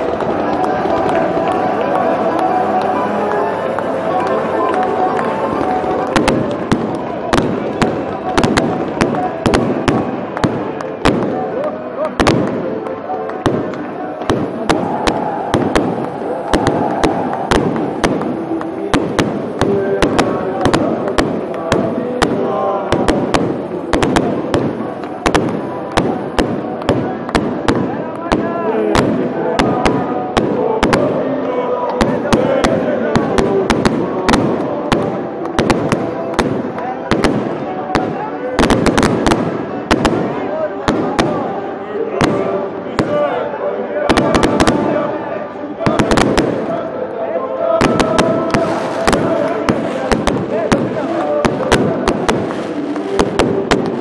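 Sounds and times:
fireworks bangs and crackles: 0.0 - 46.9, 47.6 - 54.0
voices of large crowd: 0.0 - 54.0.

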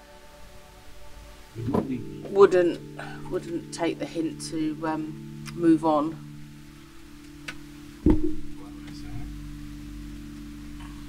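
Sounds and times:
steady low hum: 1.5 - 11.0
sharp thump: 8.0 - 8.5.

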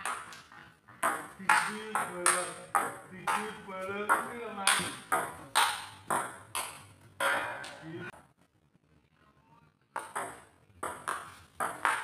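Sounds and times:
ping pong ball clicking off paddles: 1.0 - 3.5, 4.1 - 6.9, 10.0 - 12.0.

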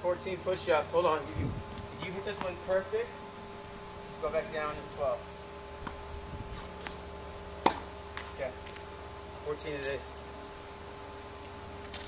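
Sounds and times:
tennis racket striking ball: 7.6 - 8.4.

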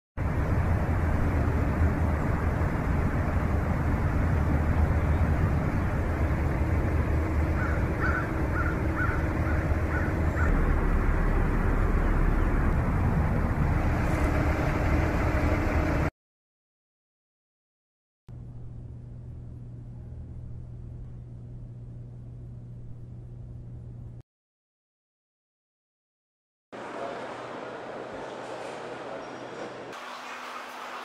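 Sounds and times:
distant road traffic rumbling: 0.2 - 16.1
crow cawing: 7.5 - 10.6.

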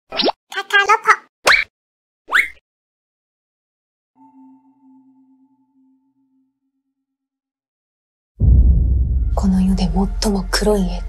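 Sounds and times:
squeaky voice-like phrase: 0.5 - 1.3.

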